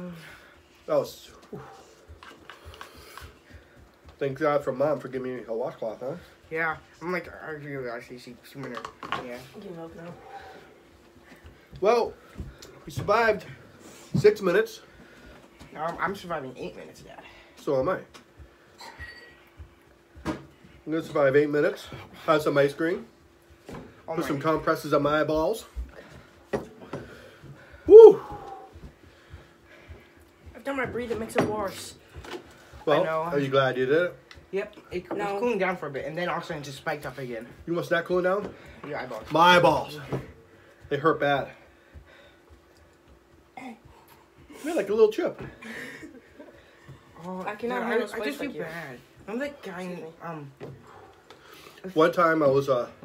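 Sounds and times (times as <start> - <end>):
man shouting woo: 27.9 - 28.7.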